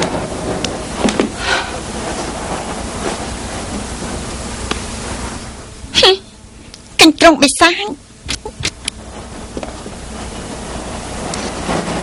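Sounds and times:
steady rushing noise: 0.0s - 6.0s, 8.0s - 12.0s.

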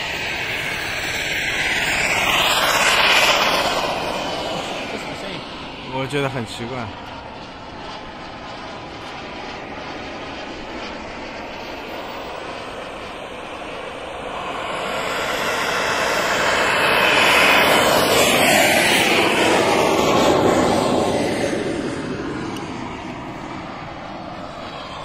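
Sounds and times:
model jet engine whine: 0.0s - 25.0s.

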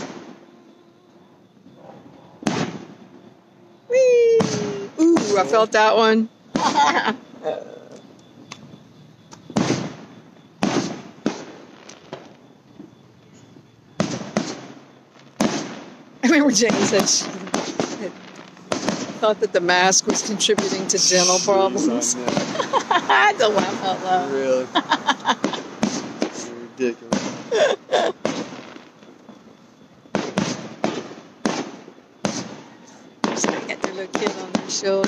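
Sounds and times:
firework shells bursting: 0.0s - 0.5s, 2.4s - 3.3s, 8.0s - 13.0s, 14.0s - 23.9s, 24.9s - 35.0s.

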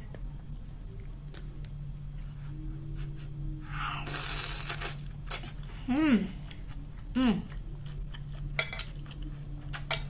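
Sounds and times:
steady low hum: 0.0s - 10.0s
person chewing food: 6.4s - 10.0s.

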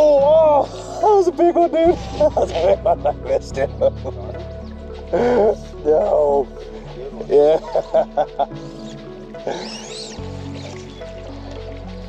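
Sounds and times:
person's voice: 0.0s - 4.4s, 5.2s - 7.8s
background music with held chords: 0.0s - 12.0s.

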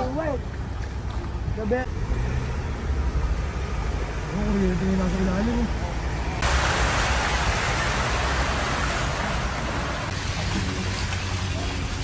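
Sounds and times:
tyres rushing through water: 0.0s - 12.0s
vehicle rumble: 0.0s - 12.0s.

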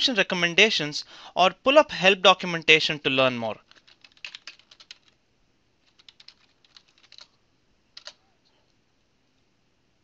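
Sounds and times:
computer keyboard typing: 3.6s - 5.2s, 5.8s - 7.4s, 8.0s - 8.2s.

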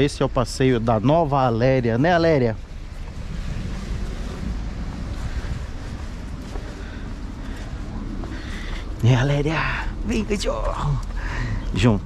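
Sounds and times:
low street background: 0.0s - 12.0s
wind noise on microphone: 0.7s - 10.4s.

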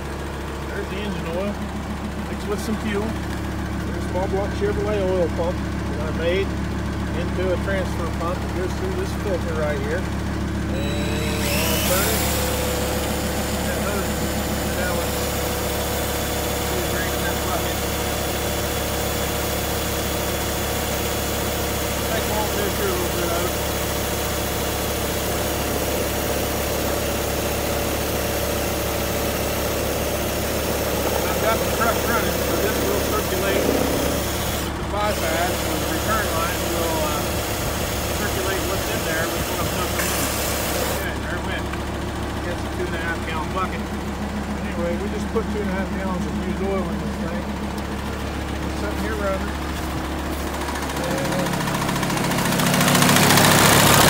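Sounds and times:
diesel truck idling: 0.0s - 54.0s
pump pumping oil: 0.0s - 54.0s.

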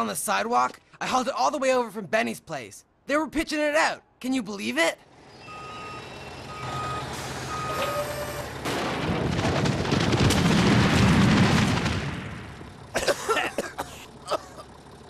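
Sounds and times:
truck engine rumble: 4.5s - 15.0s
truck reversing beeps: 5.1s - 8.7s.

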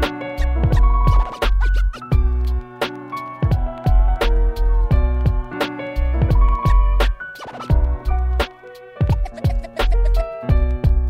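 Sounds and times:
turntable scratches: 0.0s - 10.3s
hip-hop beat with sliding bass: 0.0s - 11.0s.

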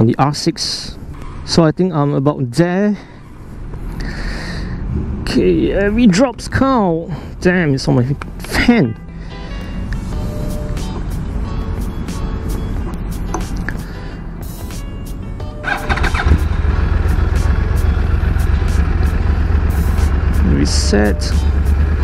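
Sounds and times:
low steady rumble: 15.6s - 22.0s
motorcycle engine idling: 15.6s - 22.0s
starter whine: 15.6s - 22.0s.

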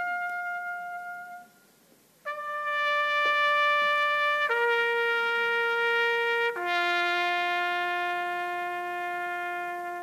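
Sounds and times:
bugle long held note: 0.0s - 1.6s, 2.2s - 10.0s.

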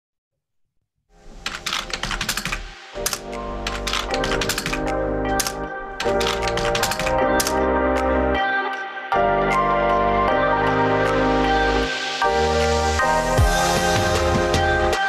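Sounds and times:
sustained music: 1.4s - 15.0s
typewriter key clicks: 1.5s - 7.6s.

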